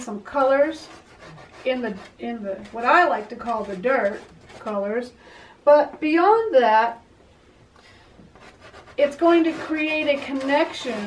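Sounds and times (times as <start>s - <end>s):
pastel scratching on paper: 0.7s - 4.8s, 8.4s - 11.0s.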